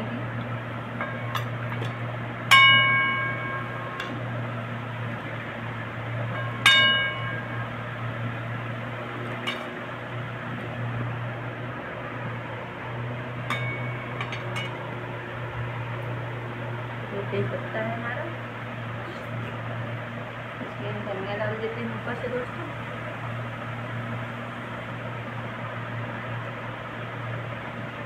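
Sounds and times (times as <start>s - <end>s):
steady low hum: 0.0s - 28.0s
steel ladle clinking on dishes: 13.5s - 14.8s.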